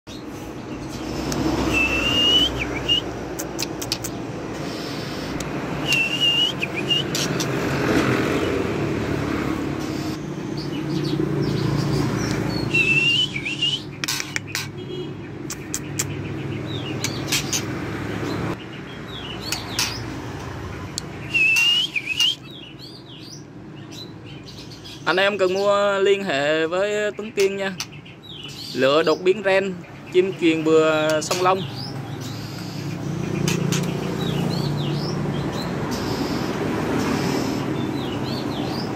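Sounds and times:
bird clicks and quick notes: 0.9s - 8.0s, 12.2s - 17.8s, 19.4s - 22.5s, 32.3s - 34.4s
bird singing whistled phrases: 1.6s - 3.1s, 5.8s - 7.3s, 12.6s - 14.0s, 21.2s - 23.4s.

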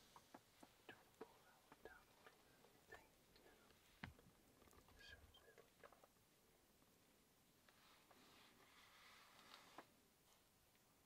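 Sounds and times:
small clicks and rustles: 0.0s - 6.9s, 7.6s - 10.9s
faint whispering: 0.7s - 4.0s, 4.6s - 6.1s.

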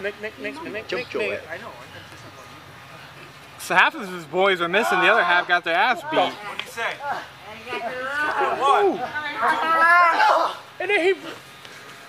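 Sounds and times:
voices talking over one another: 0.0s - 11.5s.

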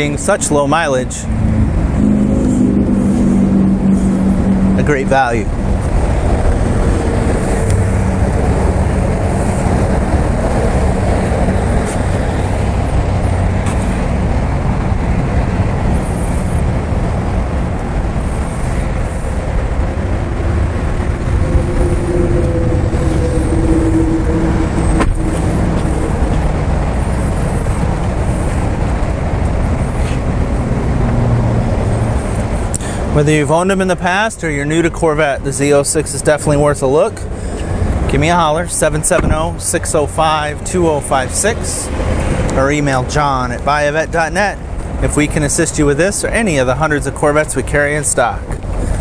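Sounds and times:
car engine idling: 0.0s - 49.0s.

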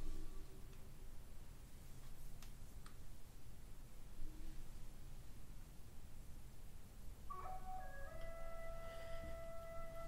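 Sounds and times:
faint low hum: 0.0s - 10.0s
soft background music: 7.3s - 10.0s.

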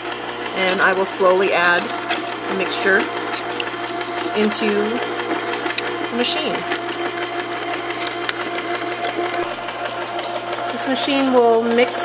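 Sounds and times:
liquid mixture pouring: 0.0s - 10.6s
ice cream maker motor humming: 0.0s - 12.0s.

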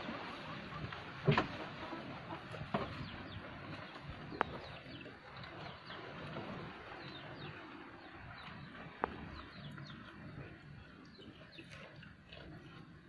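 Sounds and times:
goats chewing leaves: 0.0s - 13.0s.

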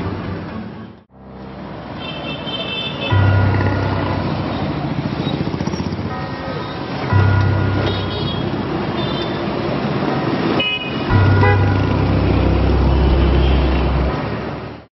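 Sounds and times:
city traffic noise: 0.0s - 14.9s
deep sustained bass hits: 3.1s - 5.1s, 11.1s - 14.4s
short car horn toots: 10.6s - 11.9s.

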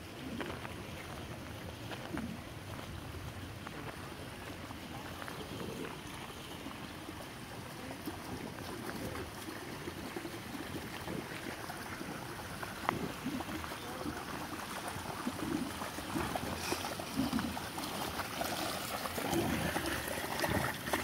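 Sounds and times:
stream flowing over stones: 0.0s - 21.0s.

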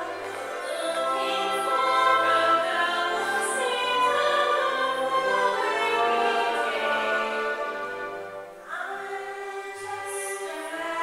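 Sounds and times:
vocal ensemble singing: 0.0s - 11.0s.

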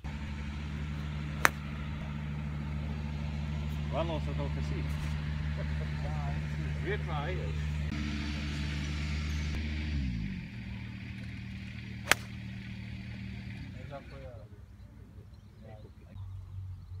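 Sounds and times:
steady low hum: 0.0s - 13.8s
golf club striking ball: 1.0s - 2.2s, 11.2s - 12.8s.

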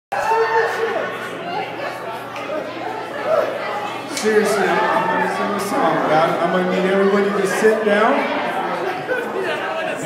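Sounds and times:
chatter of many people: 0.1s - 10.0s.

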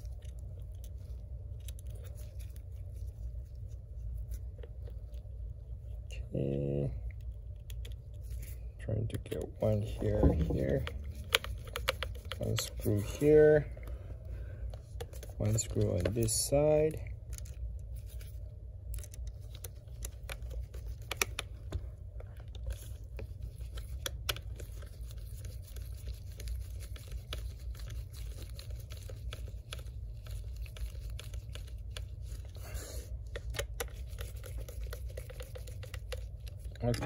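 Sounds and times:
steady low hum: 0.0s - 37.0s
hands handling laptop: 9.7s - 13.4s.

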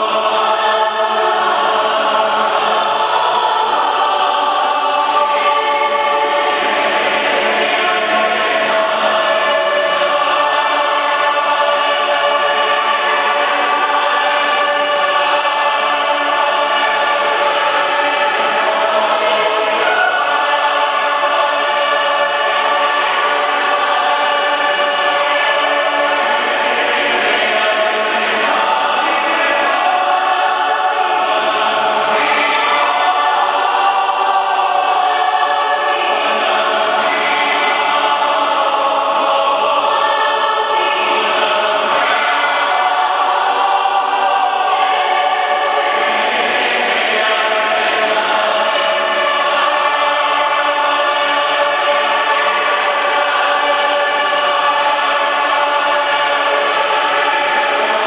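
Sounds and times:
choir singing gospel: 0.0s - 58.0s.

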